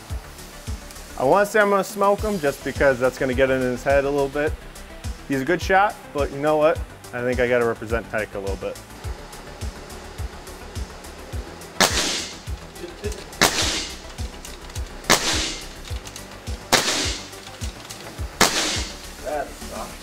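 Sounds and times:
background music with steady beat: 0.0 - 20.0
air rifle shots: 11.8 - 12.5, 13.3 - 14.3, 15.0 - 16.0, 16.7 - 19.1.

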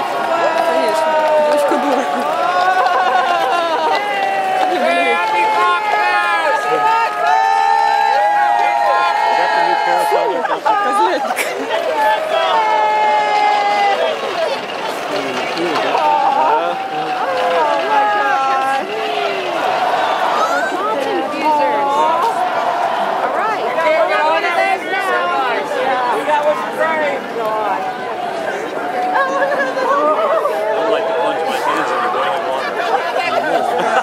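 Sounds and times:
crowd talking and calling out: 0.0 - 34.0.

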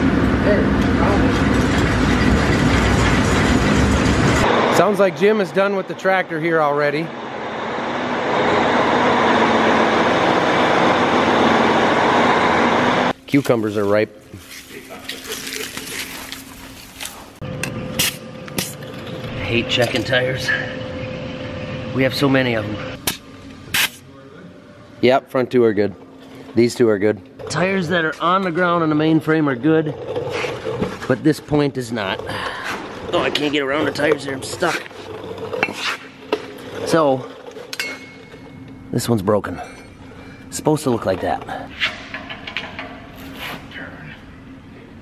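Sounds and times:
dry roots rustling and crackling: 13.4 - 17.4
short scrape: 35.6 - 36.2.

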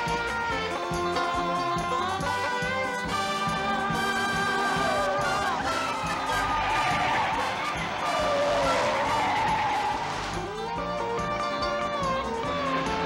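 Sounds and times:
brass-led chase music: 0.0 - 13.0
tyres squealing: 1.9 - 11.9.

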